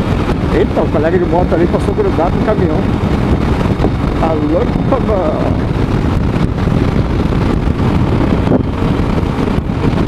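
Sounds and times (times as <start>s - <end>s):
road and engine noise: 0.0s - 10.0s
wind buffeting microphone: 0.0s - 10.0s.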